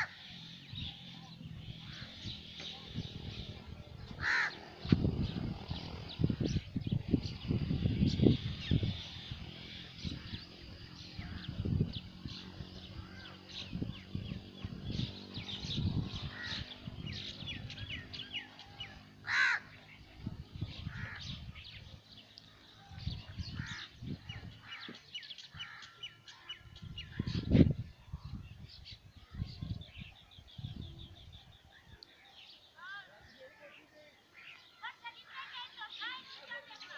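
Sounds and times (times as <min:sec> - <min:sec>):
birds chirping and calling: 0:00.0 - 0:36.9.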